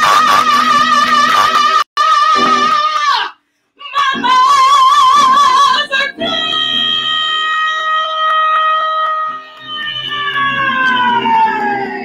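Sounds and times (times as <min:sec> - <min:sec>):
woman singing with vibrato: 0:00.0 - 0:08.1.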